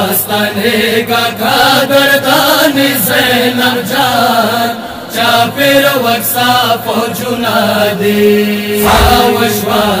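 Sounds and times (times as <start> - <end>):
man chanting a lament: 5.3 - 10.0.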